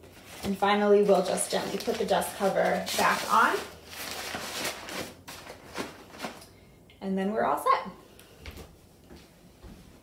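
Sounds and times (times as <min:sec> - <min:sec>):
plastic cover rustling and crinkling: 0:00.0 - 0:06.5.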